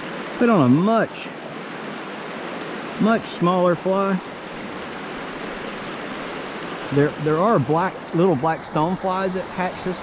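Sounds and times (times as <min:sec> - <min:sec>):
creek water flowing over rocks: 0:00.0 - 0:10.0.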